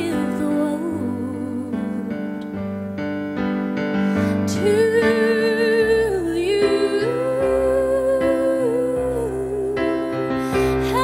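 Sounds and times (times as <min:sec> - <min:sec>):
woman singing with vibrato: 0:00.0 - 0:02.3, 0:04.3 - 0:11.0
digital piano chords: 0:00.0 - 0:11.0.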